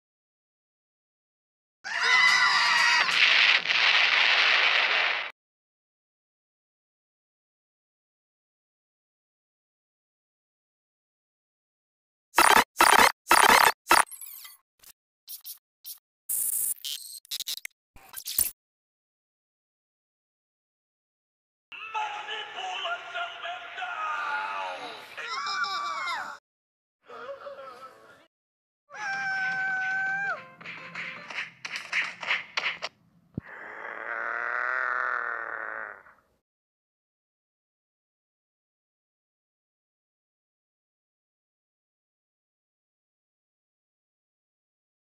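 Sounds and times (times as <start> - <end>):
squeaky and clinking effects: 12.4 - 14.6.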